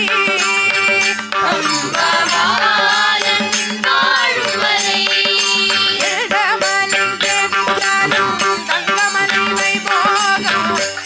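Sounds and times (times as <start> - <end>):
light percussion strikes: 0.0 - 11.0
violin accompaniment: 0.0 - 11.0
women singing devotional song: 0.0 - 11.0
steady drone: 1.3 - 6.1.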